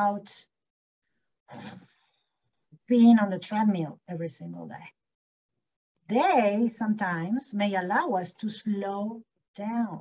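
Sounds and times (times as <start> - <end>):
woman speaking: 0.0 - 0.5, 2.9 - 5.0, 6.1 - 10.0.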